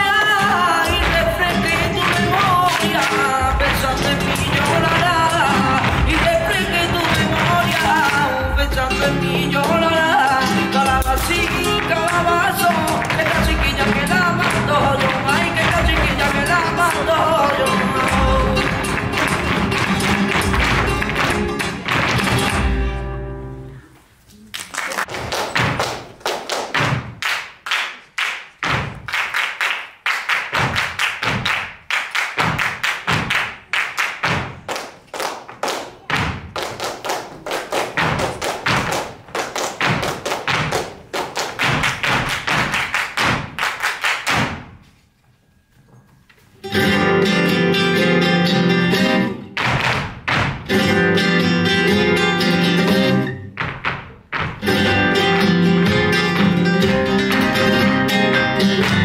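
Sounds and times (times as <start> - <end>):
flamenco claps and stamps: 0.0 - 23.0, 24.6 - 44.9, 49.5 - 59.0
flamenco guitar music: 0.0 - 23.9, 30.3 - 44.9, 46.4 - 59.0.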